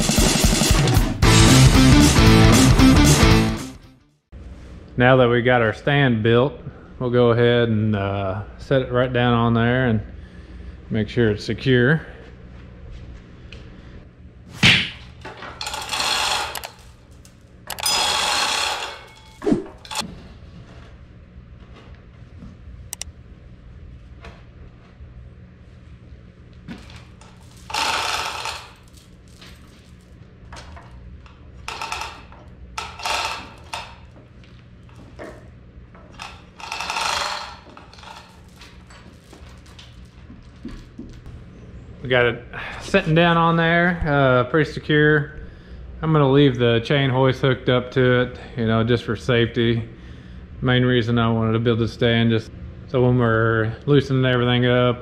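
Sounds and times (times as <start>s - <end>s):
chain links rattling through hoist: 15.6s - 17.0s, 17.7s - 20.0s, 27.2s - 30.0s, 31.7s - 34.1s, 36.2s - 40.2s.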